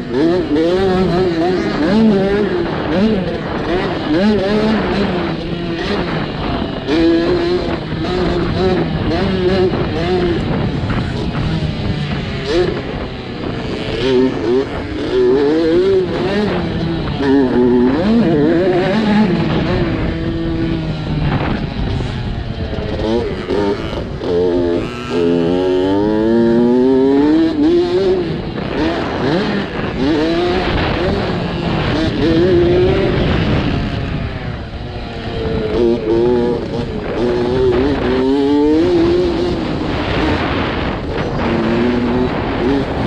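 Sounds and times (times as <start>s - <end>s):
dirt bike engine revving: 0.0s - 43.0s.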